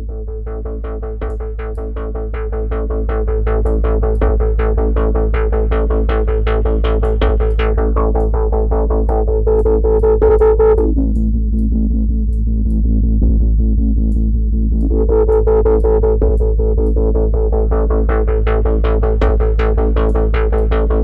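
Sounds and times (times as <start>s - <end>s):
steady bass hum: 0.0s - 21.0s.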